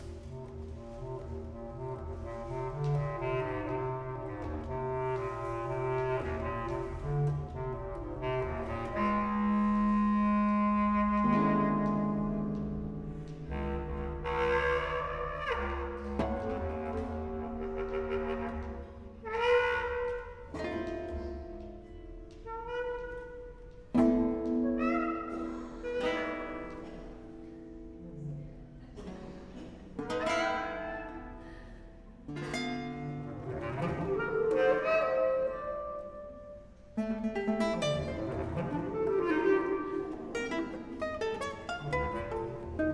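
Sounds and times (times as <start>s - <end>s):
clarinet held notes: 0.0s - 29.1s, 30.0s - 42.9s
plucked guitar notes: 11.2s - 18.8s, 32.2s - 42.9s.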